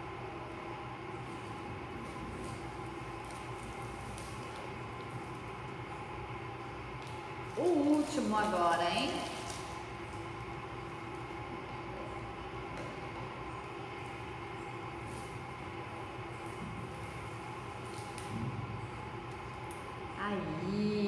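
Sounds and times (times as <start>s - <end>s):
room hum with even tones: 0.0s - 21.0s.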